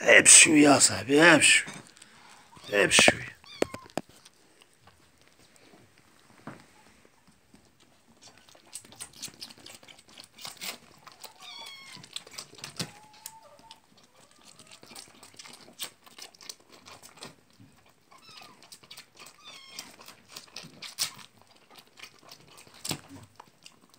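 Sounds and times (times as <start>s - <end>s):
lamb sucking from bottle: 7.8s - 23.9s
high-pitched animal cries: 11.2s - 12.1s.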